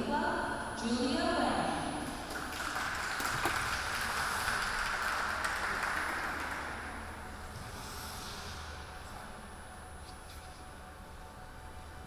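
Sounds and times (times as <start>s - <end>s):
audience applauding: 2.2s - 7.2s.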